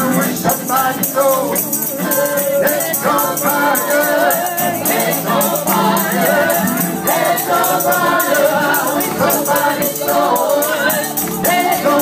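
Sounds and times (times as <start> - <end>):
gospel choir singing with band: 0.0 - 12.0
shaker percussion beat: 0.0 - 12.0.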